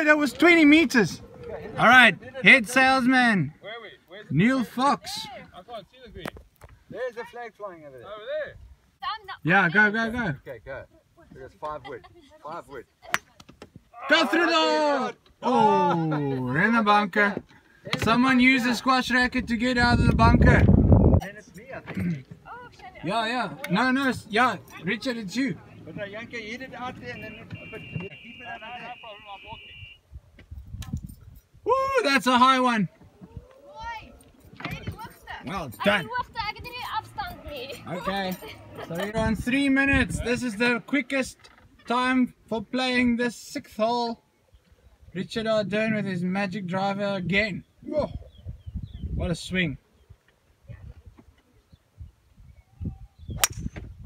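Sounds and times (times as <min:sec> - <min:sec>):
golf club striking ball: 0:53.4 - 0:53.9.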